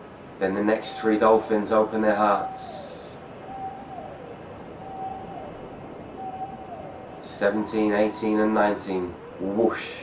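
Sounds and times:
soft hazy drone: 0:00.0 - 0:10.0.

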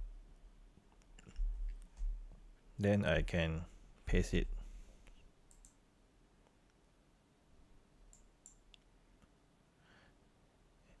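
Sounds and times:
faint computer mouse clicks: 0:05.0 - 0:05.8, 0:08.1 - 0:08.9.

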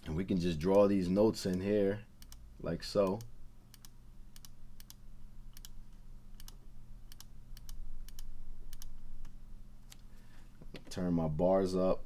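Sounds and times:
computer mouse clicking: 0:02.2 - 0:02.4, 0:03.0 - 0:10.0.

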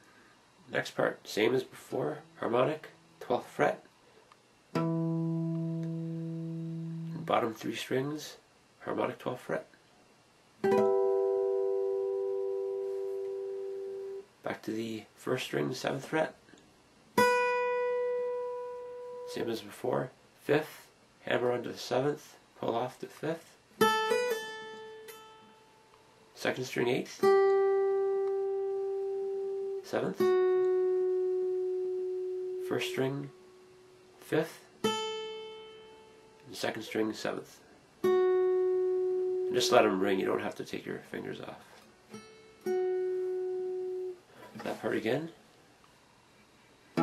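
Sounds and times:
acoustic guitar harmonics ringing: 0:04.7 - 0:07.3, 0:10.6 - 0:14.3, 0:17.2 - 0:19.5, 0:23.8 - 0:25.9, 0:27.2 - 0:34.0, 0:34.8 - 0:36.4, 0:38.0 - 0:40.3, 0:42.1 - 0:44.3.

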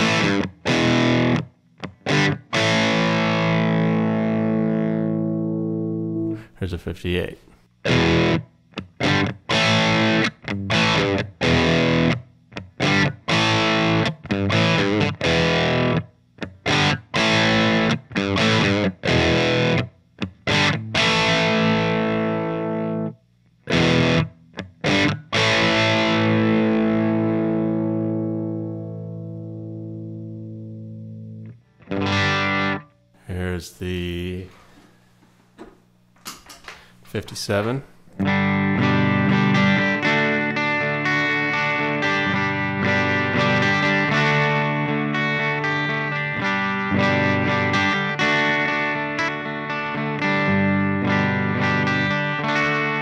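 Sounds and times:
electric guitar chords: 0:00.0 - 0:06.5, 0:07.8 - 0:33.0, 0:37.5 - 0:53.0.

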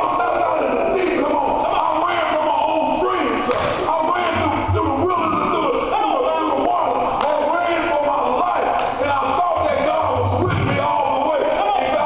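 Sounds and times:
man preaching loudly: 0:00.0 - 0:12.0.

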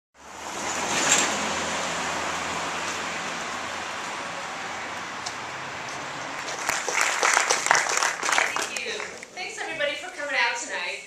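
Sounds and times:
audience applauding: 0:05.4 - 0:09.4.

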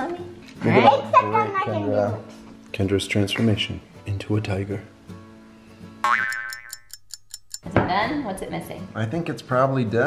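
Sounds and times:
quiet background music: 0:00.0 - 0:10.0
cartoon boing rising: 0:06.0 - 0:06.8
fast clock ticking: 0:06.5 - 0:07.7.

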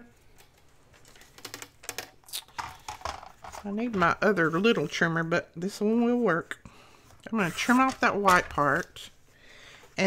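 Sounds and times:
paper rustling: 0:07.0 - 0:09.2.

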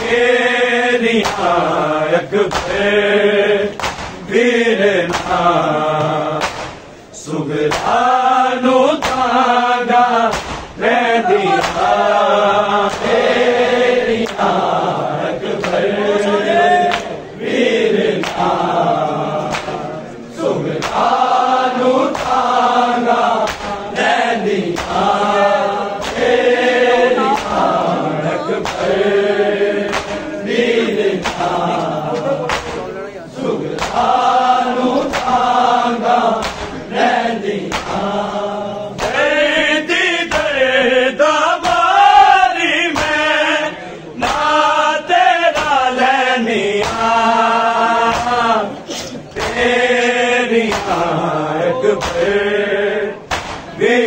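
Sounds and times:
men chanting in unison: 0:00.0 - 0:54.0
chest beating slaps: 0:01.2 - 0:01.7, 0:02.4 - 0:03.0, 0:03.7 - 0:04.4, 0:05.0 - 0:07.0, 0:07.7 - 0:08.1, 0:08.9 - 0:09.5, 0:10.2 - 0:12.2, 0:12.8 - 0:14.7, 0:16.8 - 0:17.2, 0:18.1 - 0:18.7, 0:19.4 - 0:20.0, 0:20.7 - 0:21.4, 0:22.1 - 0:27.9, 0:28.6 - 0:33.0, 0:33.7 - 0:36.9, 0:37.6 - 0:39.4, 0:40.3 - 0:40.6, 0:41.6 - 0:42.0, 0:42.9 - 0:43.4, 0:45.5 - 0:45.9, 0:46.7 - 0:52.5, 0:53.2 - 0:53.8.

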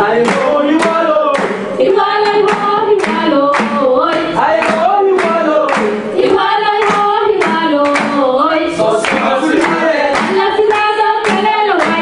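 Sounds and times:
group of voices singing: 0:00.0 - 0:12.0
hand claps: 0:00.2 - 0:12.0.

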